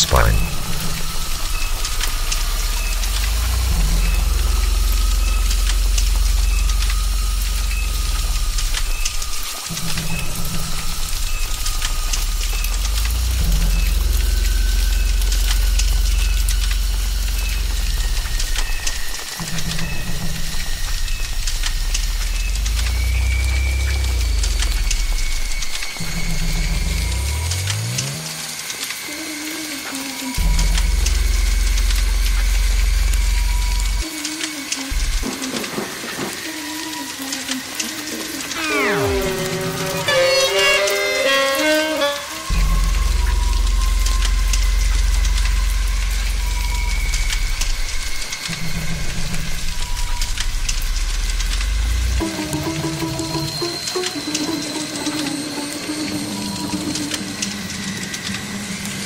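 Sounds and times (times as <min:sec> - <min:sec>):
ominous low droning music: 0:00.0 - 0:59.0
steady high hiss: 0:00.0 - 0:59.0
rising sweep: 0:38.5 - 0:43.7.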